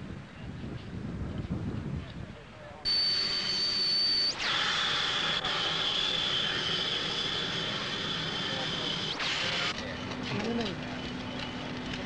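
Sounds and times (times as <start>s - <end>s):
jet engine whine: 2.9s - 12.0s.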